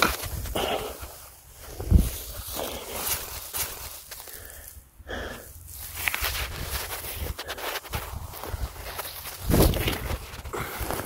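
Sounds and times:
footsteps through grass: 0:00.0 - 0:04.8, 0:05.5 - 0:11.0.

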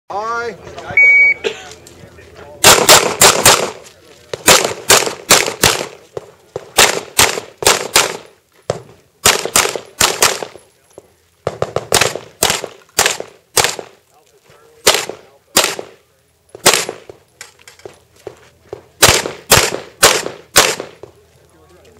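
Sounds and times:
pistol shots in rapid bursts: 0:02.6 - 0:10.6, 0:11.4 - 0:14.0, 0:14.8 - 0:16.0, 0:16.6 - 0:17.2, 0:19.0 - 0:21.1.

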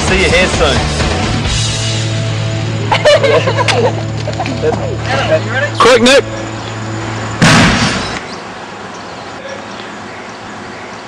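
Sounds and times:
sudden loud burst of noise: 0:07.3 - 0:08.3.

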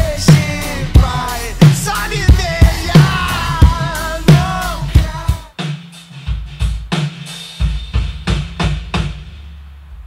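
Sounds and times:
acoustic drum kit playing: 0:00.0 - 0:10.0.

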